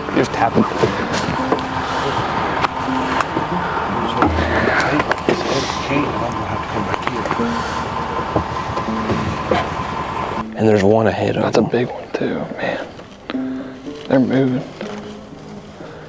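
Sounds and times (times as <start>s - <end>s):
music playing: 0.0s - 16.0s
vehicle road noise: 0.0s - 16.0s.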